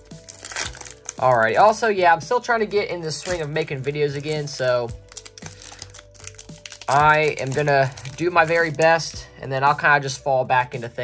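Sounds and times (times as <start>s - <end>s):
foil wrapper crinkling: 0.0s - 2.0s, 2.8s - 9.1s
faint background music: 0.0s - 11.0s.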